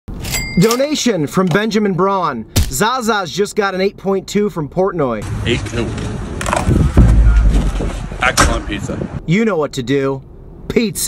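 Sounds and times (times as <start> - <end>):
low rumble: 5.2 - 9.2.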